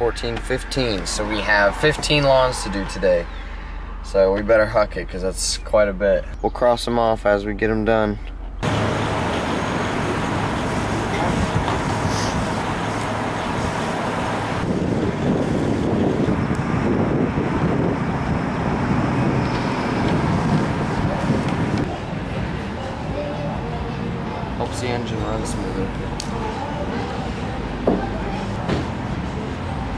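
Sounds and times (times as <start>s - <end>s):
road traffic noise: 0.0s - 6.5s, 8.1s - 29.9s.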